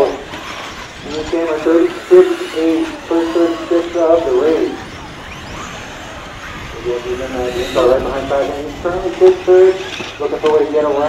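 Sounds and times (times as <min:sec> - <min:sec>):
outdoor background noise: 0:00.0 - 0:11.0
man calling out: 0:01.0 - 0:04.9, 0:06.8 - 0:09.6.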